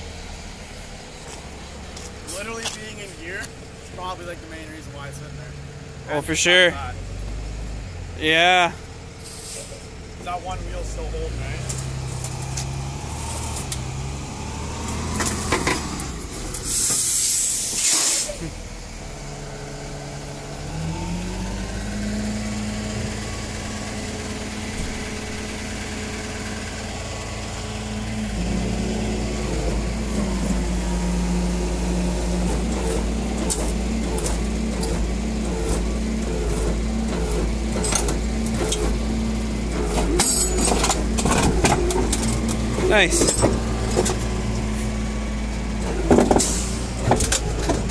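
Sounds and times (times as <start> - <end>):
truck engine drone: 0.0 - 47.9
car scraping over concrete: 1.0 - 5.3, 9.2 - 18.6, 22.5 - 47.9
loud air hiss: 9.2 - 9.8, 16.6 - 18.4.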